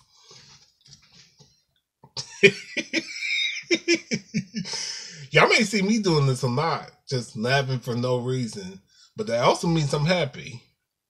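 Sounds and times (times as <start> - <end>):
man laughing hard: 2.2 - 5.3.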